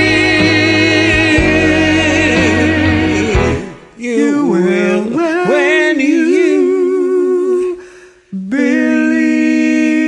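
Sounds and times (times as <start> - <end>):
men singing in harmony: 0.0 - 10.0.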